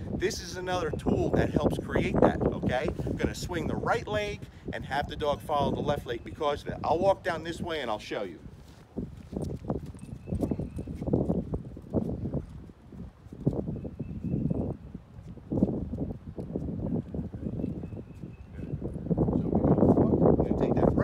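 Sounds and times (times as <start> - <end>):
wind buffeting microphone: 0.0 - 21.0
footsteps on concrete: 8.5 - 13.7.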